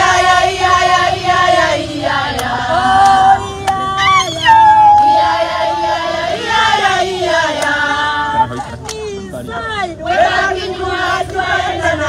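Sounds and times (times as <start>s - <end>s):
group of women singing: 0.0s - 12.0s.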